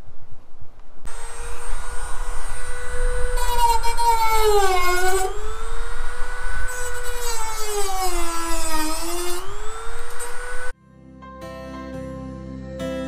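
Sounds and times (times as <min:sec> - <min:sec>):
power tool whining against sheet metal: 0:01.1 - 0:10.7
soft guitar music: 0:10.8 - 0:13.0.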